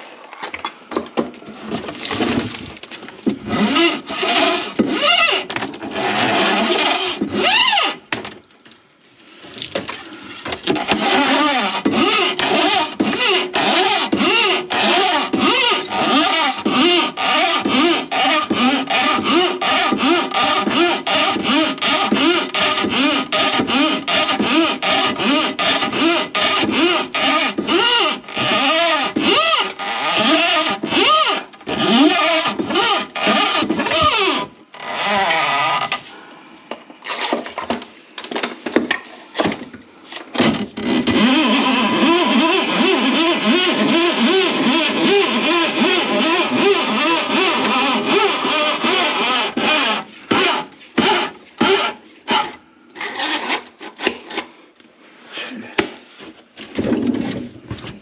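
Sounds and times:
cable rattling and scraping in pipe: 0:00.2 - 0:54.6.

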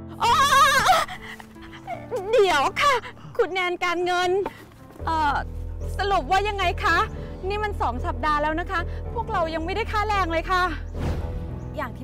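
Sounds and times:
soft piano music: 0:00.0 - 0:12.0
woman crying tearfully: 0:00.1 - 0:03.4.

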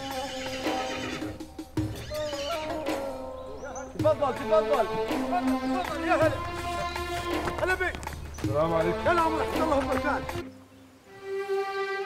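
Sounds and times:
horses whinnying: 0:00.0 - 0:08.3
hooves on ground: 0:00.0 - 0:10.6.

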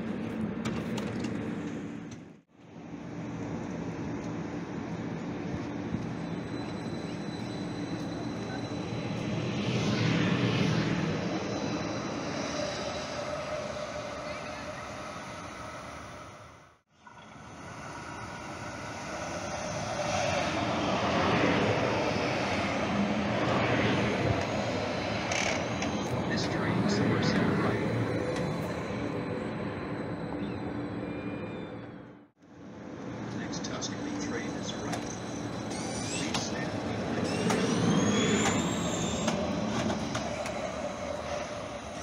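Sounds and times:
train wheels rumbling on rails: 0:33.2 - 0:42.0.

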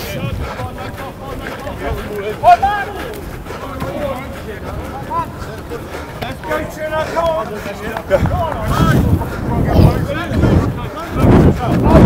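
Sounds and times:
wind rumble on microphone: 0:00.0 - 0:02.2, 0:08.1 - 0:12.0
voices shouting calls: 0:00.0 - 0:12.0.

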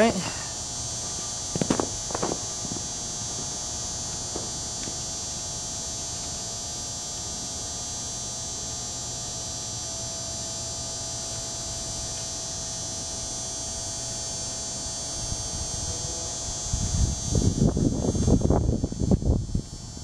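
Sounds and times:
electrical hum with high buzz: 0:00.0 - 0:20.0.

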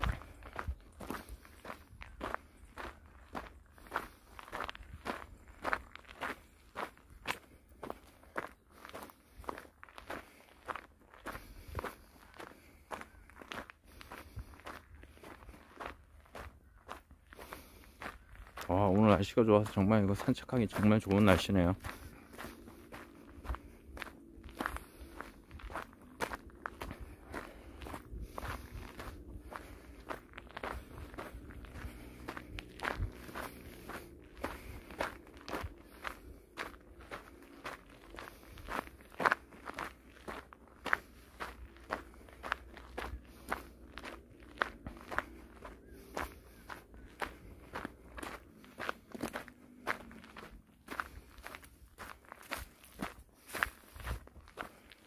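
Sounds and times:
footsteps crunching on gravel: 0:00.0 - 0:55.0.

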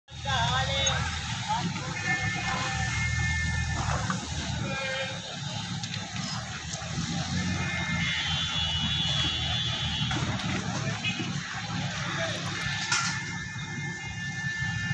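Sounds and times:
low vehicle rumble: 0:00.1 - 0:14.9
voices: 0:00.1 - 0:14.9.

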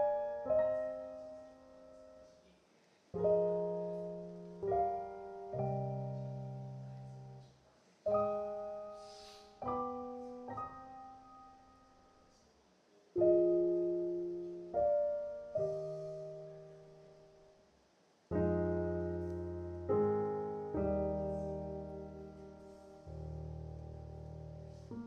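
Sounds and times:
slow quiet piano chords: 0:00.0 - 0:25.0.

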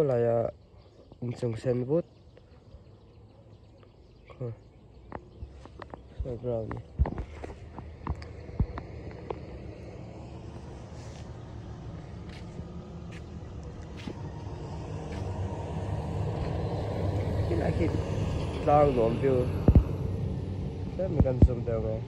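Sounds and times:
voice: 0:00.0 - 0:00.6, 0:01.2 - 0:02.1, 0:04.3 - 0:04.6, 0:06.2 - 0:06.9, 0:17.4 - 0:19.7, 0:21.0 - 0:22.0
vehicle engine running: 0:05.0 - 0:22.0.

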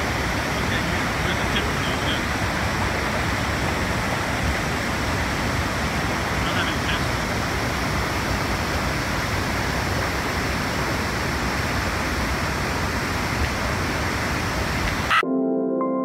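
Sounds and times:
river pouring over waterfall: 0:00.0 - 0:15.2
ambient music with held tones: 0:15.2 - 0:16.0.

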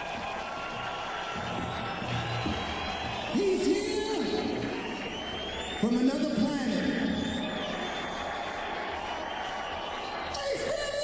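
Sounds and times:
concert crowd roar: 0:00.0 - 0:11.0.

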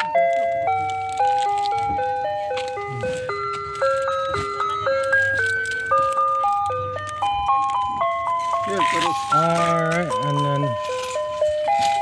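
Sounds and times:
ice cream truck chime jingle: 0:00.0 - 0:12.0.

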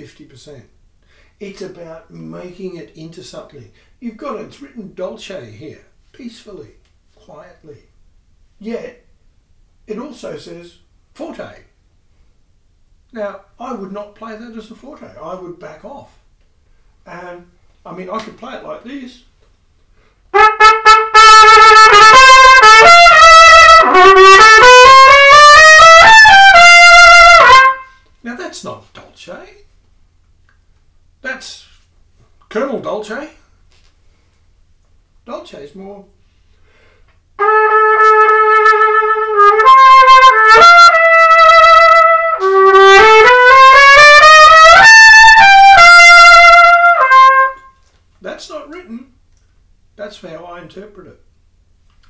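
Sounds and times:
loud trumpet playing: 0:20.3 - 0:28.0, 0:37.4 - 0:47.8.

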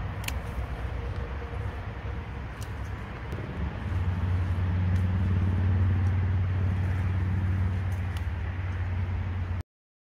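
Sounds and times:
pruning shears clicking: 0:00.0 - 0:01.3, 0:02.5 - 0:08.9
vehicle engine running: 0:00.0 - 0:09.6.

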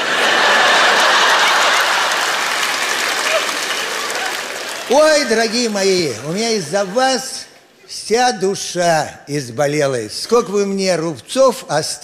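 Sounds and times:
audience applauding: 0:00.0 - 0:07.4.

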